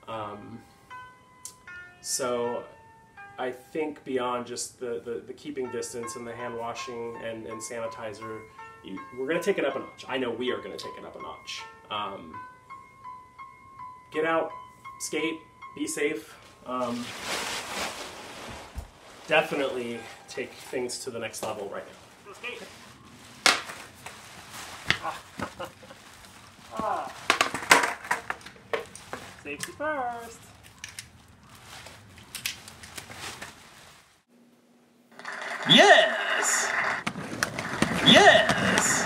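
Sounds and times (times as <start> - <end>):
plastic suit crinkling: 16.6 - 34.2
synthetic fabric rustling: 16.7 - 27.6, 31.1 - 34.3
helmet clicks: 30.6 - 31.1.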